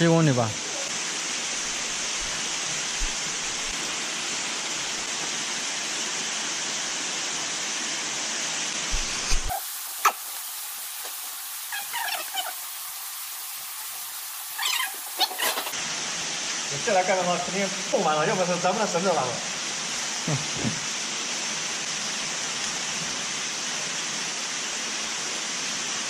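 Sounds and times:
steady rushing hiss: 0.0s - 26.0s
short high squeaks: 11.7s - 12.6s, 14.5s - 15.7s.

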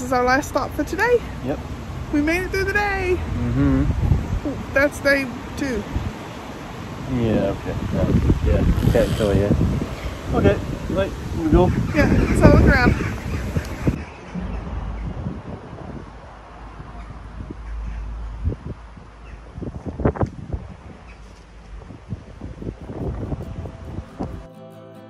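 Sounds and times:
wind rumbling on microphone: 0.0s - 24.5s
acoustic guitar music: 22.9s - 25.0s.

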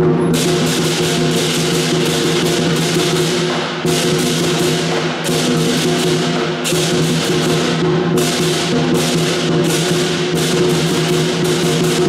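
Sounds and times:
cymbals clashing: 0.0s - 12.0s
large drum beating: 0.0s - 12.0s.

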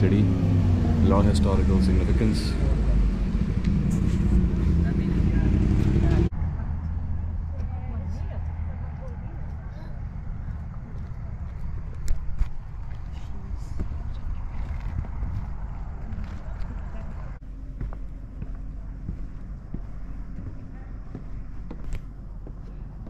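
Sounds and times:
footsteps: 3.6s - 6.3s, 9.0s - 23.0s
faint voices: 4.4s - 23.0s
wind rumble on microphone: 8.5s - 17.4s.

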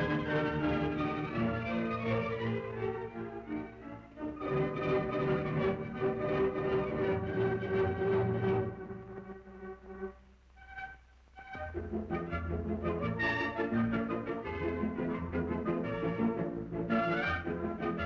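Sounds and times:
orchestral music with strings and brass: 0.0s - 18.0s.

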